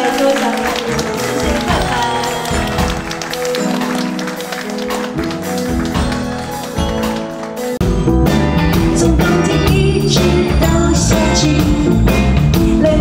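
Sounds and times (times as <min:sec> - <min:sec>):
pop band playing live: 0:00.0 - 0:13.0.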